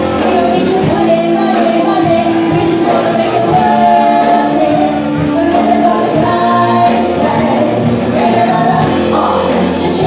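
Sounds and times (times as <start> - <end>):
live pop band playing: 0.0 - 10.0
singers singing together: 0.1 - 10.0.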